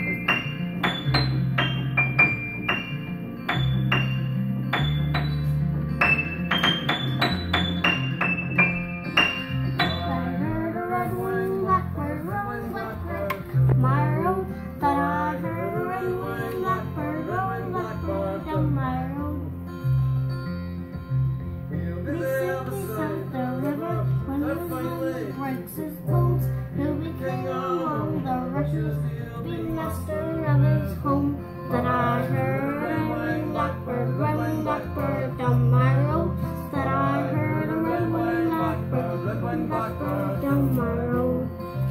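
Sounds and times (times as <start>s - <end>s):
piano playing: 0.0s - 41.9s
boy singing: 9.8s - 19.5s, 22.0s - 41.6s.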